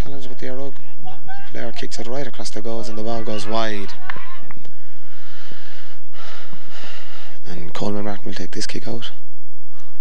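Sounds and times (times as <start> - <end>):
breathy microphone noise: 0.0 - 10.0
low electrical hum: 0.0 - 10.0.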